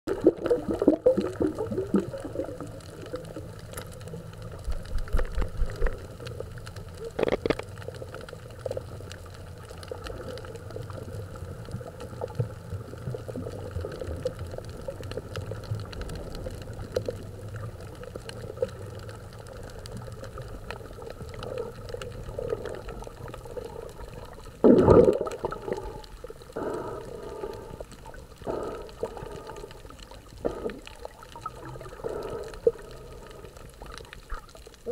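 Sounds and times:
underwater low rumble: 0.1s - 34.9s
water gurgling: 0.1s - 34.9s.

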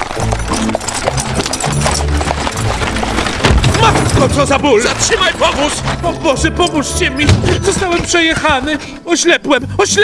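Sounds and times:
horse hooves clip-clopping: 0.0s - 9.1s
background music: 0.0s - 10.0s.

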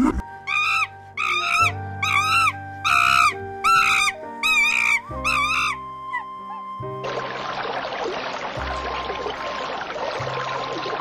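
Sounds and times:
background music: 0.0s - 11.0s
cheetah chirping: 0.5s - 6.2s.

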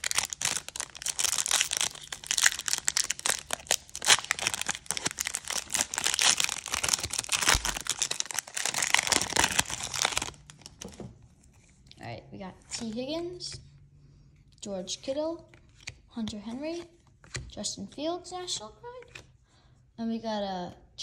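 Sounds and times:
foil wrapper tearing and crinkling: 0.0s - 10.8s.

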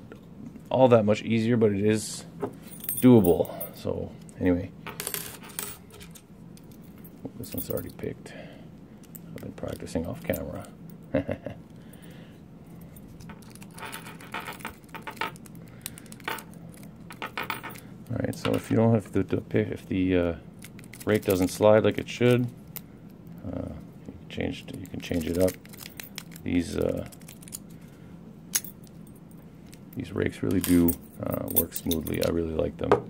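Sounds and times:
padlock and keys clinking: 12.8s - 17.9s, 20.6s - 21.6s, 24.7s - 27.7s
lock picks clinking on padlock: 25.1s - 27.6s.

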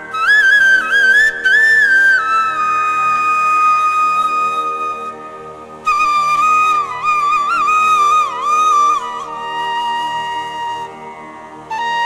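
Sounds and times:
flute melody: 0.0s - 12.0s
steady drone: 0.0s - 12.0s.

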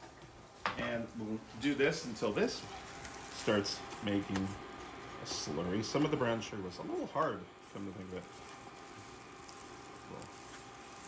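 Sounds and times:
butter and sugar sizzling in a pan: 1.6s - 11.0s
spatula stirring and pressing: 2.6s - 6.0s, 8.0s - 11.0s.

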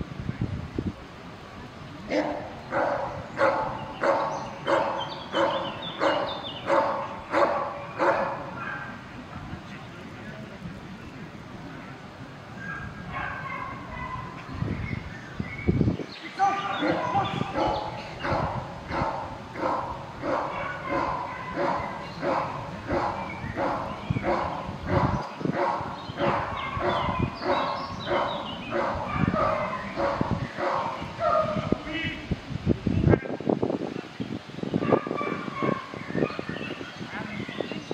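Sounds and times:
dog barking: 2.1s - 9.0s, 12.6s - 14.4s, 16.8s - 31.6s, 34.8s - 36.4s.

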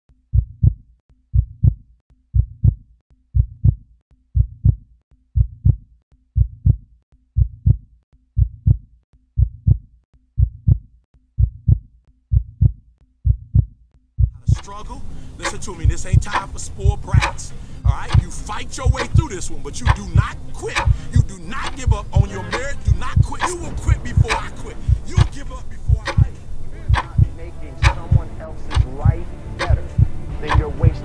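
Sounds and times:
heartbeat thumping: 0.3s - 1.8s, 2.4s - 2.8s, 3.4s - 3.8s, 4.4s - 4.8s, 5.4s - 5.8s, 6.4s - 8.8s, 9.4s - 31.0s.

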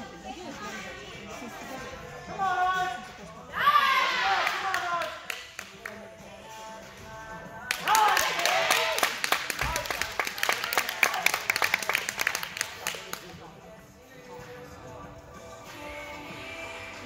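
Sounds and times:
music: 0.0s - 17.0s
group clapping and cheering: 3.9s - 6.1s, 7.6s - 13.4s.

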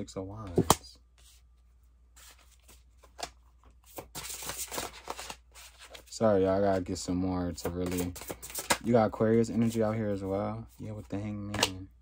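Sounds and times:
cards sliding and clicking: 7.6s - 8.9s.

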